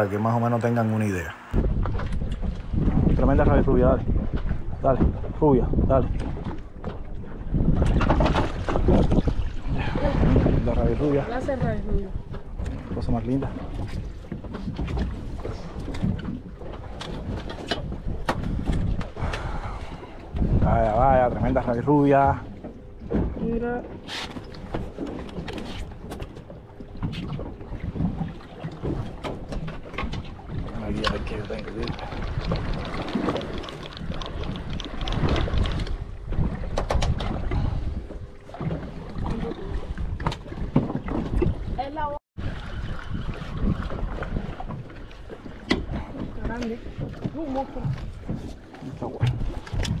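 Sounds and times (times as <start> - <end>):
water splashes: 0.0 - 50.0
wind buffeting microphone: 0.0 - 50.0.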